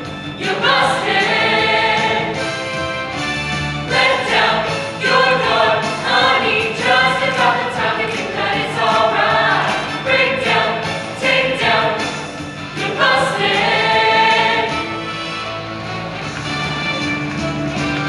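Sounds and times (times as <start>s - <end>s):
choir singing: 0.4s - 2.6s, 3.8s - 15.1s.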